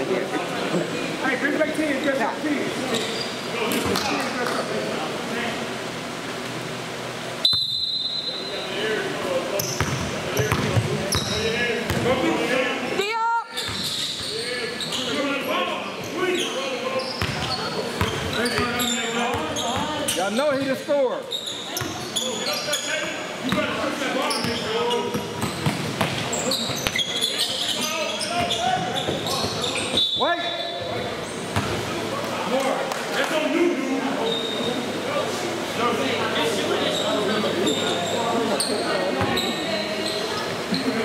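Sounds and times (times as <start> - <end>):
echoing voices and chatter: 0.0 - 7.4, 8.2 - 41.0
basketball bouncing on hardwood floor: 9.8 - 10.9.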